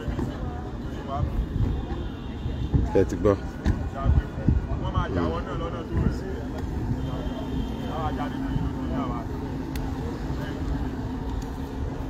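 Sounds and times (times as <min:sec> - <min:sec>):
low engine hum: 0:00.0 - 0:12.0
people talking: 0:00.0 - 0:12.0.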